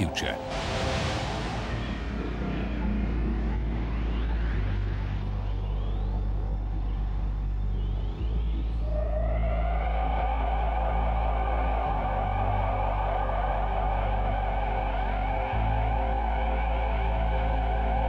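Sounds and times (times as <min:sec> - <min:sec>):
deep synth hum: 0:00.0 - 0:18.0
shimmering synth layer: 0:00.0 - 0:18.0.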